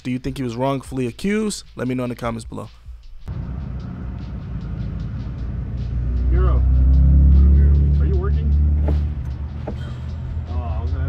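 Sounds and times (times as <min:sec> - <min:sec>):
background music: 0:00.0 - 0:11.0
low vehicle rumble: 0:03.3 - 0:11.0.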